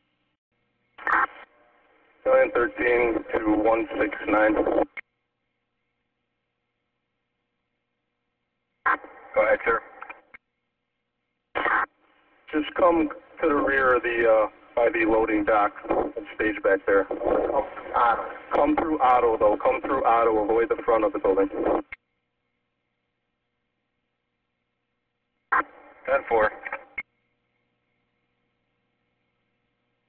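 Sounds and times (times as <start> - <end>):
radio transmission: 1.0 - 1.5, 2.2 - 5.0, 8.8 - 10.4, 11.5 - 22.0, 25.5 - 27.0
radio click: 8.9 - 10.4, 15.5 - 20.1, 25.5 - 27.0.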